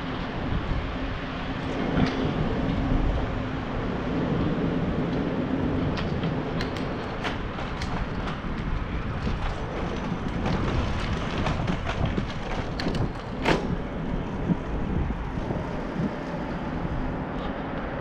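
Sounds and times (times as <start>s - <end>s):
rushing and rolling ride noise: 0.0s - 18.0s
wind on microphone: 0.0s - 18.0s.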